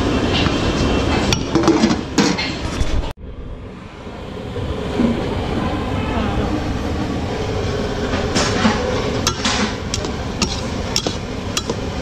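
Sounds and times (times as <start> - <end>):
stove burner roaring: 0.0 - 2.7, 3.8 - 12.0
metal spatula scraping pot: 8.7 - 12.0.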